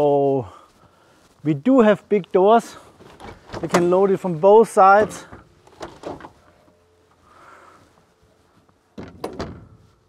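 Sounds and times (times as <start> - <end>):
cargo door clunk: 3.1 - 4.0, 4.9 - 6.4, 9.0 - 9.8.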